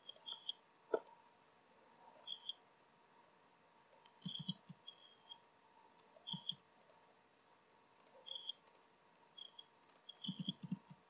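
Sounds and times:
computer mouse clicking: 0.0 - 1.2, 4.1 - 5.4, 6.3 - 7.0, 8.0 - 8.8, 9.4 - 11.0.

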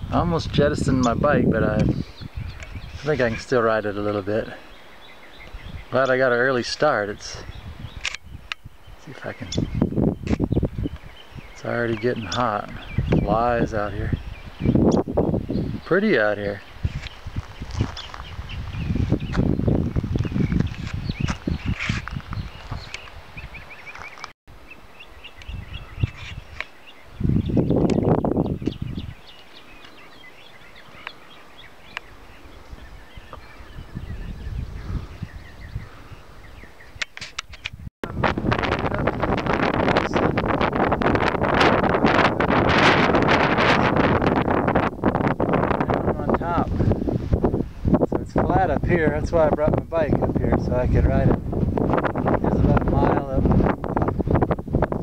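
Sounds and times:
wind buffeting microphone: 0.0 - 24.3, 25.0 - 55.0.

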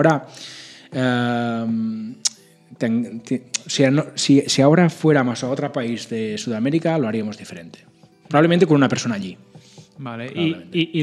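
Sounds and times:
man talking: 0.9 - 9.4, 10.0 - 11.0.

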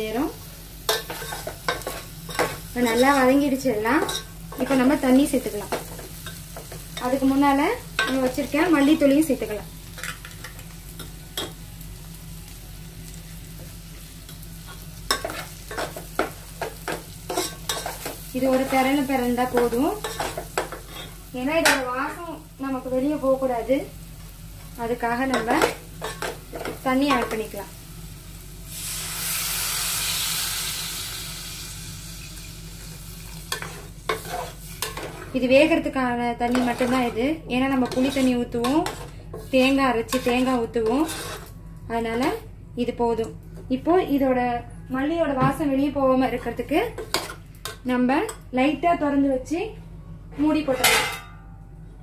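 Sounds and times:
water sizzling in hot pot: 0.0 - 35.4
steady low hum: 30.6 - 52.0
metal spoon scraping a pot: 36.5 - 37.2, 37.8 - 41.5.

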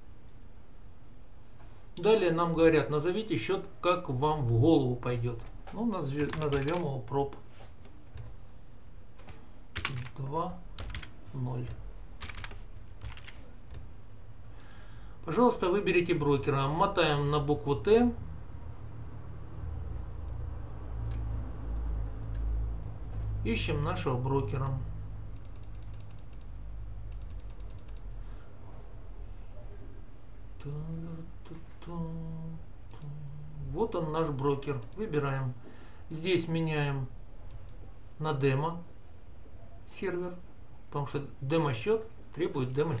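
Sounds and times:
low steady hum: 0.0 - 43.0
computer keyboard keystrokes: 6.2 - 6.9, 9.2 - 10.2, 10.8 - 13.9, 25.4 - 26.5, 27.1 - 28.1.

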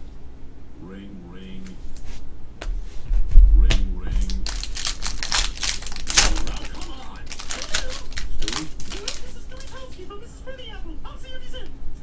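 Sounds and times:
cards flipped by hand: 4.2 - 10.0.

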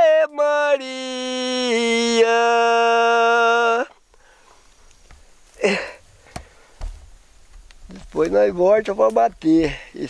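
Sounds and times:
man inhaling noisily: 4.1 - 4.7
faint clicks: 7.5 - 9.8.

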